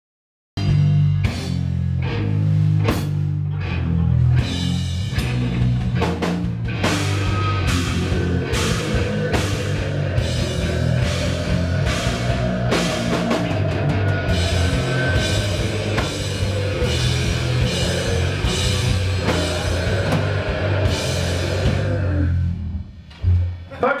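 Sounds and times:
distorted electric guitar: 0:00.6 - 0:23.8
heavy cymbal and drum hits: 0:04.6 - 0:22.3.

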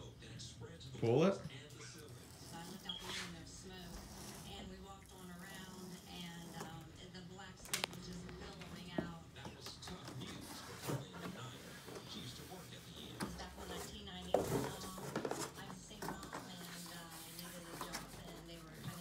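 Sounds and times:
cardboard scraping and rustling: 0:10.1 - 0:19.0.

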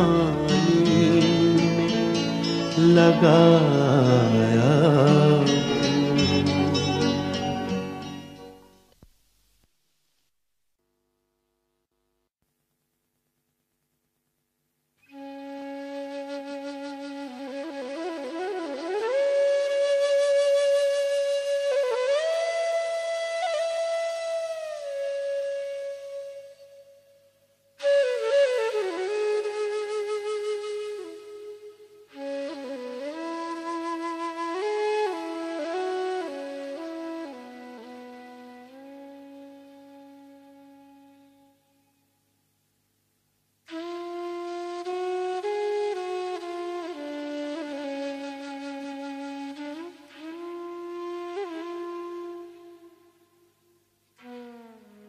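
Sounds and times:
flute melody: 0:00.0 - 0:08.7, 0:15.0 - 0:41.9, 0:43.7 - 0:55.0
lower instrumental line: 0:00.0 - 0:08.8.

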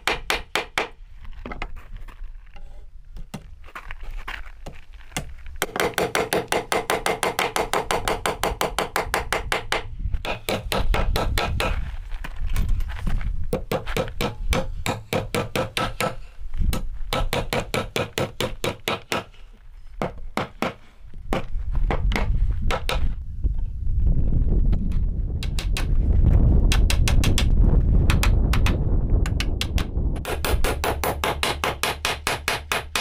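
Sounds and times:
hammer driving nails into wood: 0:00.0 - 0:01.0, 0:05.2 - 0:11.8, 0:13.5 - 0:19.4, 0:20.0 - 0:23.2, 0:25.4 - 0:25.9, 0:26.7 - 0:27.5, 0:28.1 - 0:33.0.

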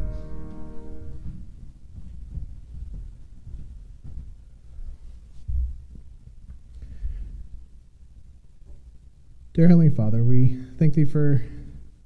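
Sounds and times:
dull low thumps: 0:00.0 - 0:07.6
faint low hum: 0:00.0 - 0:12.0.

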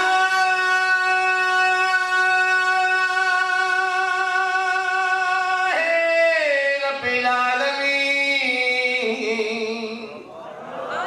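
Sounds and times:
man singing a long note: 0:00.0 - 0:10.2.

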